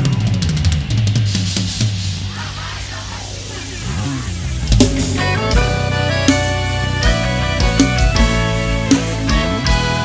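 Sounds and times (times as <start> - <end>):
live band music: 0.0 - 10.0
snare and cymbal hits: 4.7 - 10.0.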